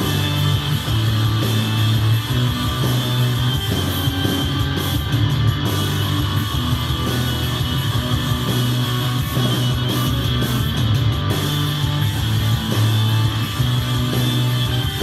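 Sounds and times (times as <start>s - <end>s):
loud rock music instrumental: 0.0s - 15.0s.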